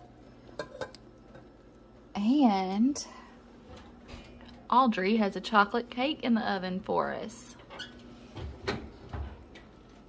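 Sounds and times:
kitchenware clinking: 0.6 - 1.5.

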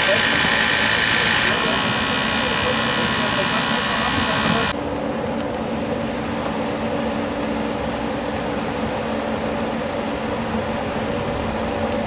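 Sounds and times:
power unit high whine: 0.0 - 12.0.

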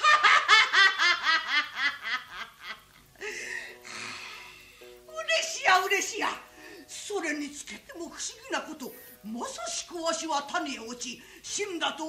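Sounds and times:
woman laughing: 0.0 - 3.5.

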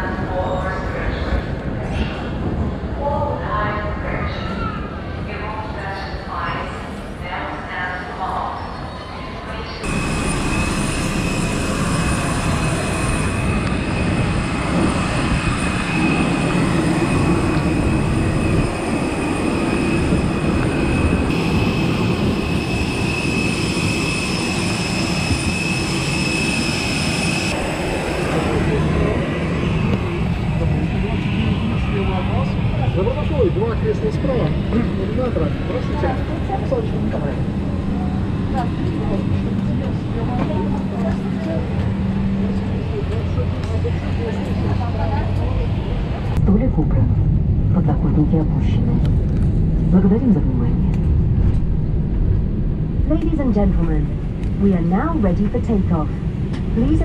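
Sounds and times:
jet aircraft rumble and whine: 0.0 - 57.0
passengers talking: 0.0 - 57.0.

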